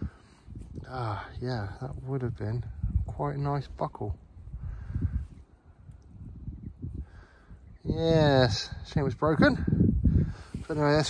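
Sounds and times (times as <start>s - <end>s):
low rumble on microphone: 0.0s - 11.0s.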